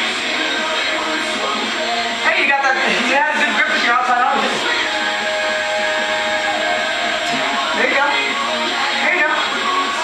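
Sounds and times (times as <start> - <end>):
background music with held note: 0.0 - 10.0.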